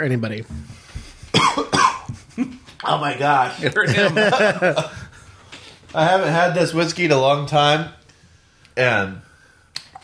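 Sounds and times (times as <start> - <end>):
man coughing: 1.3 - 2.2.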